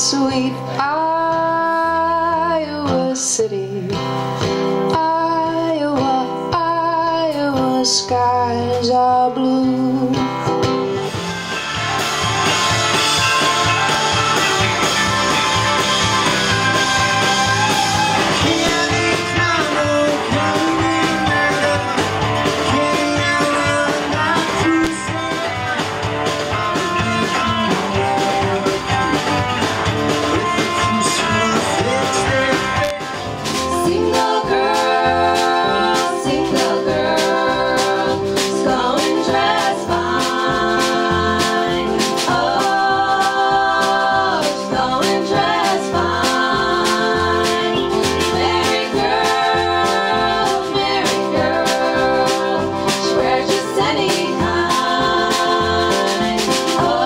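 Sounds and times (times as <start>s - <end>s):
woman singing: 0.0s - 4.0s, 4.8s - 10.3s, 22.6s - 25.6s, 30.4s - 57.0s
acoustic guitar: 0.0s - 57.0s
live band playing: 0.0s - 57.0s
voices singing in harmony: 11.9s - 29.2s, 30.1s - 57.0s.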